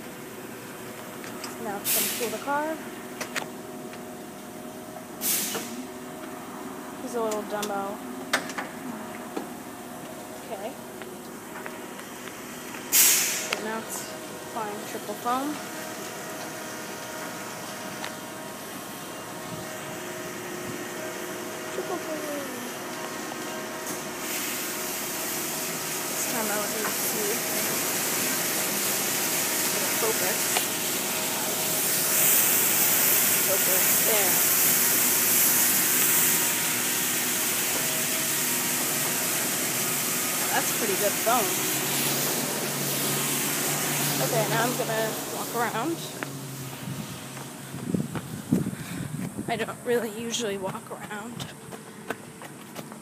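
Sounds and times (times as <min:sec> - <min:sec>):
car wash machinery hum: 0:00.0 - 0:53.0.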